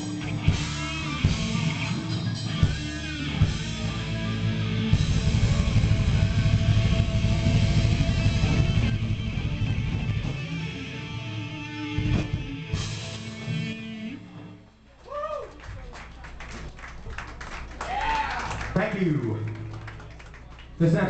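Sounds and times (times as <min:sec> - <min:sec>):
hard rock band playing: 0:00.0 - 0:14.6.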